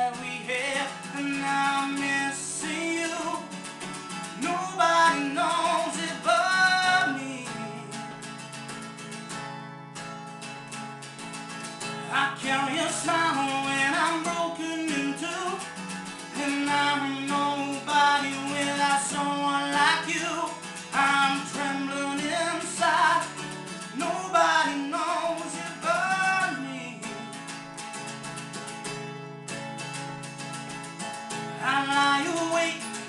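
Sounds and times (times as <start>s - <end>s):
man singing: 0.0s - 8.2s, 12.0s - 27.3s, 31.6s - 33.0s
acoustic guitar strumming: 0.0s - 33.0s.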